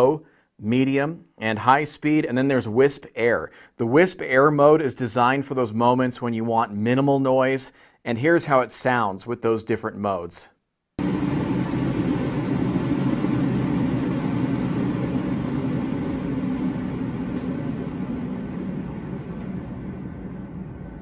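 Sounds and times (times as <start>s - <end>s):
air purifier fan running: 11.0s - 21.0s.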